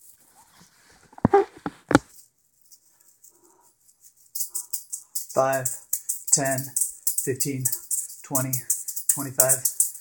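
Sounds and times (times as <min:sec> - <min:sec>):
juggling balls rattling and jingling: 0:02.0 - 0:10.0.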